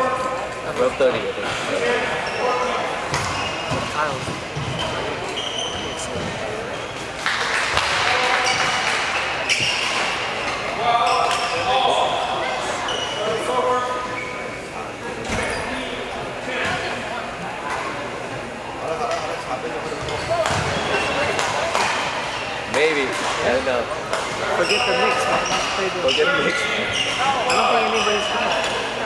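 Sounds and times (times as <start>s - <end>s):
voices chatting: 0.0s - 29.0s.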